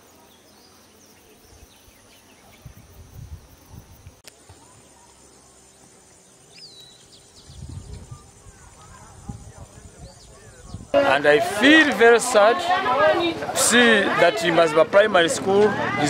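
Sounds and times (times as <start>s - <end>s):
small birds chirping: 0.0s - 11.0s
high insect trill: 0.0s - 14.5s.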